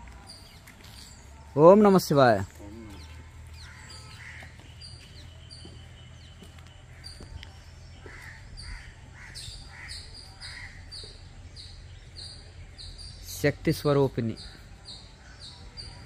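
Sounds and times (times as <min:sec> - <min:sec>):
rough low bird calls: 0:00.0 - 0:16.0
high bird calls: 0:00.1 - 0:16.0.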